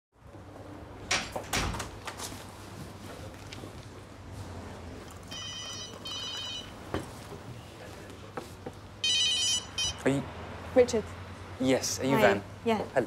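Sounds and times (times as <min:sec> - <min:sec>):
mobile phone ringtone: 0:05.3 - 0:06.8, 0:09.0 - 0:10.1.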